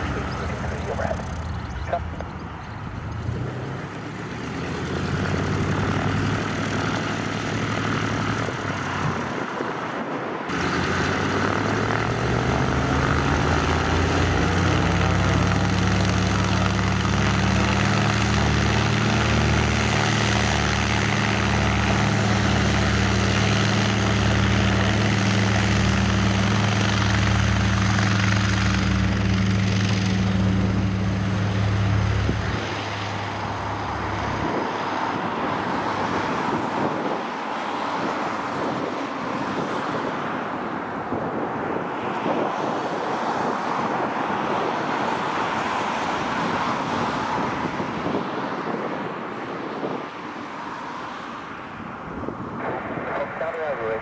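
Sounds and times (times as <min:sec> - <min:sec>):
propeller aircraft engines: 0:00.0 - 0:54.0.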